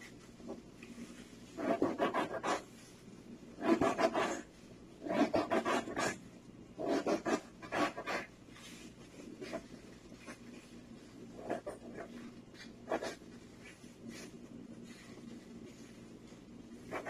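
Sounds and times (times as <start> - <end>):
gloved hands rubbing and rustling: 0.0 - 3.6, 8.3 - 17.0.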